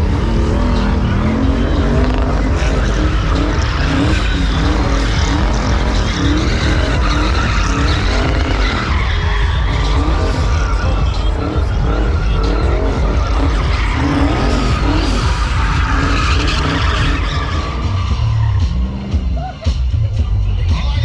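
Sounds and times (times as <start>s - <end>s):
car engine revving hard: 0.0s - 19.4s
tyres squealing on pavement: 0.0s - 19.7s.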